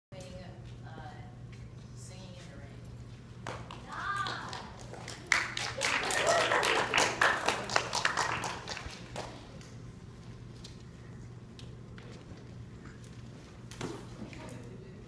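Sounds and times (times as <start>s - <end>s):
audience clapping: 3.4s - 9.7s
audience cheering: 3.9s - 8.7s.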